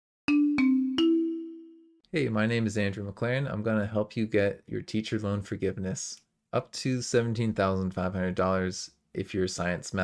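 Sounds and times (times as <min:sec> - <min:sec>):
three-note chime jingle: 0:00.3 - 0:02.0.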